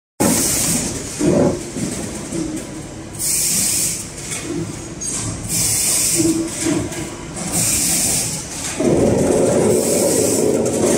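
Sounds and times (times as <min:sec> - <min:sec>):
machine rumble and knocking: 0:00.2 - 0:10.9.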